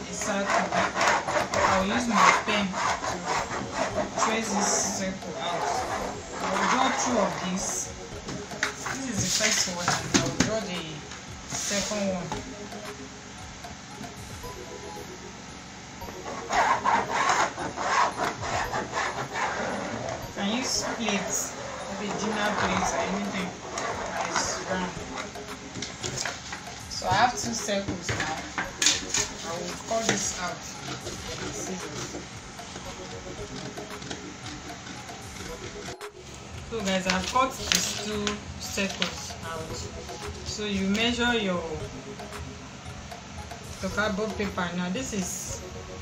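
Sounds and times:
pen scratching on cardboard: 0.0 - 7.8, 16.2 - 25.4
room noise: 0.0 - 46.0
indistinct voices: 16.5 - 33.7.

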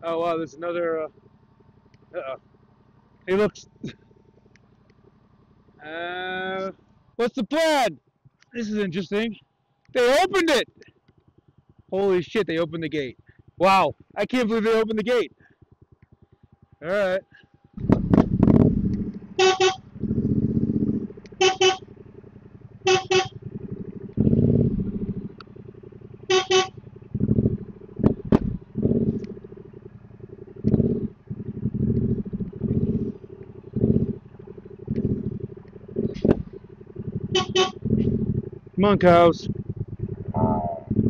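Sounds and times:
low rumbles: 0.0 - 41.0
motorcycle horn beeping: 19.2 - 20.0, 21.2 - 23.6, 26.1 - 26.9, 37.2 - 38.0.

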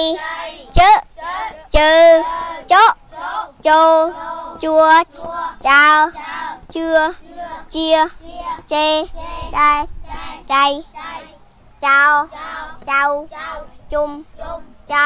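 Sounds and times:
children chanting syllables: 0.0 - 15.0.

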